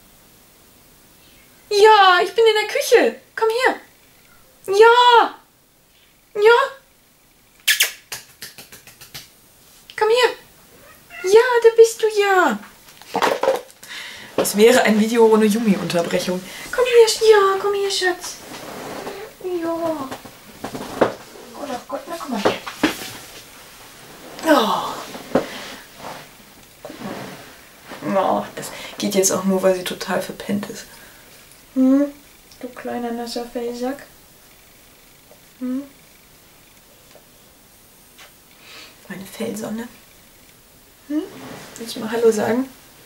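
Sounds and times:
cat meowing: 10.7s - 11.5s
soft rustling: 14.3s - 29.4s, 41.1s - 43.0s.

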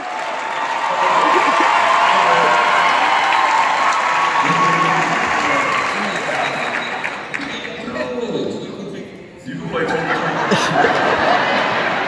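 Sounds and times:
audience applauding: 0.0s - 8.2s.

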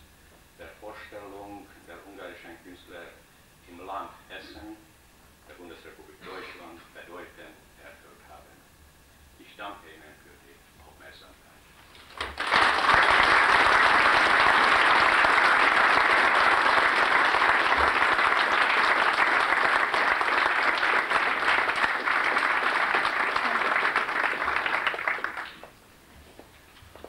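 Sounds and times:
audience applauding: 11.9s - 25.8s.

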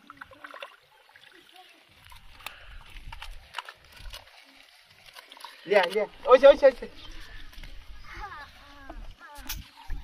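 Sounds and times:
fish flapping on wet mud: 2.0s - 6.3s.

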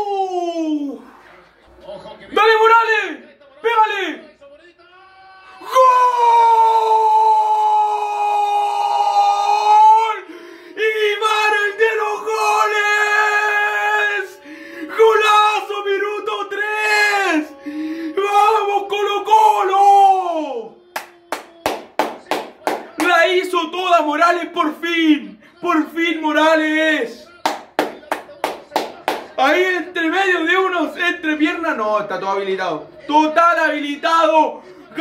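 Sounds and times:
man screaming: 0.0s - 1.0s, 5.0s - 20.7s
yelling and cheering: 0.0s - 1.4s, 4.9s - 31.8s
hands clapping: 20.9s - 23.3s, 27.3s - 29.6s.

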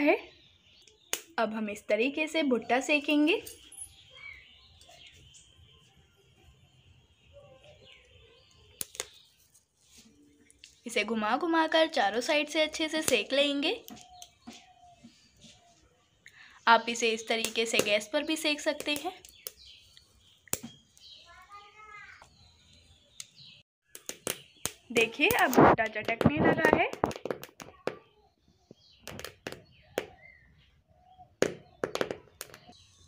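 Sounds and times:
birds chirping: 0.0s - 33.0s
wood fire crackling: 18.8s - 21.3s.

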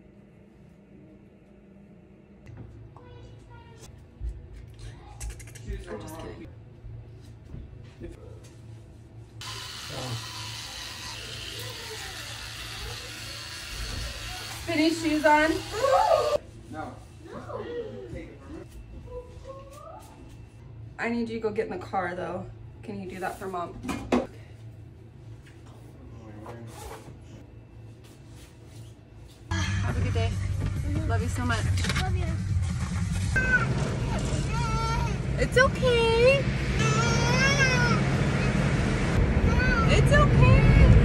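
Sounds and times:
low machine hum: 0.0s - 41.0s
car engine rumble: 29.9s - 41.0s
young child whining: 33.4s - 35.2s, 36.8s - 38.1s.

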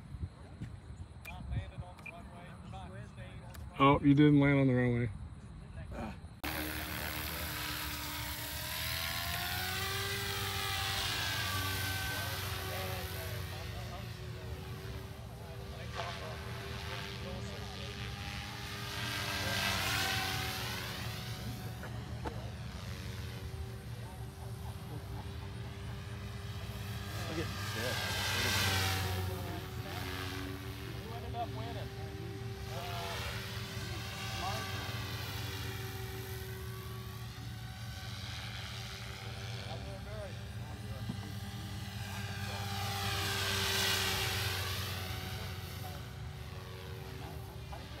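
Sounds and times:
rc helicopter motor whine: 6.4s - 48.0s.

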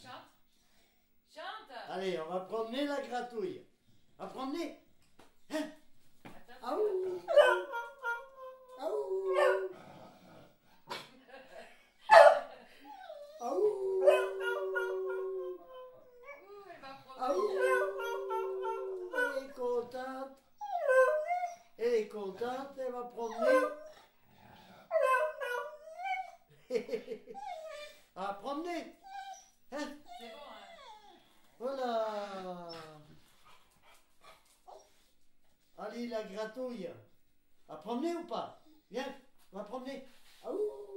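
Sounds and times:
dog howling: 6.7s - 9.8s, 13.2s - 16.5s, 17.2s - 19.8s, 20.6s - 21.6s, 24.9s - 26.4s
dog barking: 7.3s - 8.2s, 9.3s - 9.7s, 12.1s - 12.6s, 25.0s - 25.8s.

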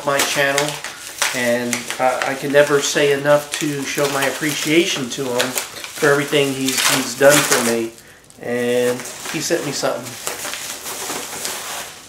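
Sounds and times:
packaging crinkling and rustling: 0.0s - 12.0s.

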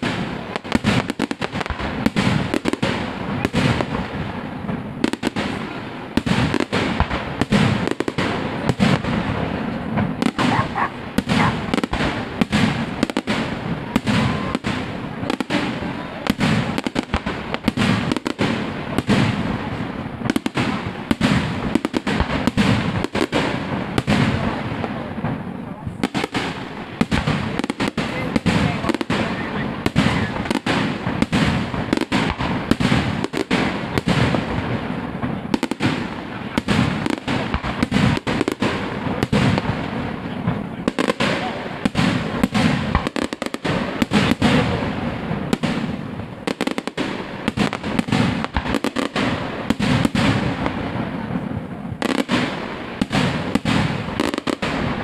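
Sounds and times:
fireworks bangs: 0.0s - 55.0s.

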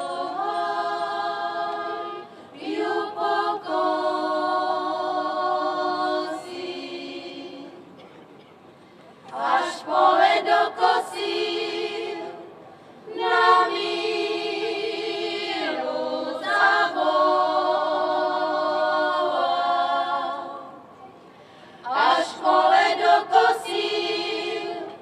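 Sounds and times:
women's choir singing: 0.0s - 7.8s, 9.3s - 20.9s, 21.8s - 25.0s.

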